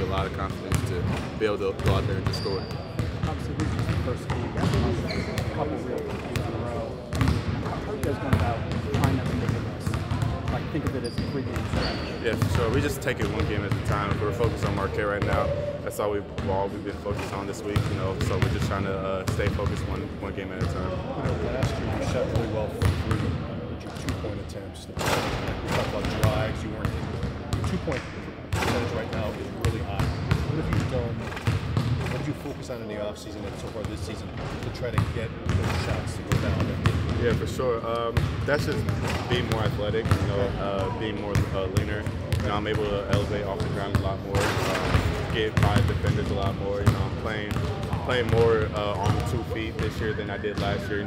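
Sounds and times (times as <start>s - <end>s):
basketballs bouncing on hardwood floor: 0.1s - 15.4s, 16.4s - 20.0s, 22.4s - 23.4s, 25.0s - 32.4s, 34.4s - 50.0s.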